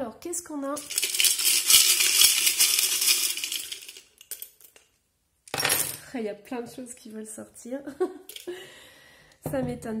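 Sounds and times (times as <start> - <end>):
charms and pebbles rattling: 0.7 - 4.8.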